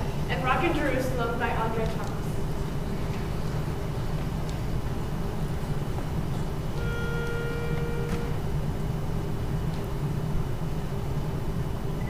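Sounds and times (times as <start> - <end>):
low room rumble: 0.0 - 12.0
pitch pipe tone: 6.7 - 8.6.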